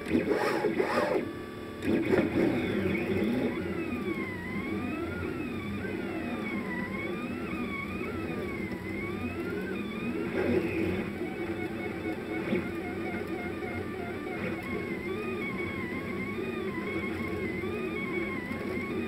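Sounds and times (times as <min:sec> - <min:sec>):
stepper motors whining: 0:00.0 - 0:19.0.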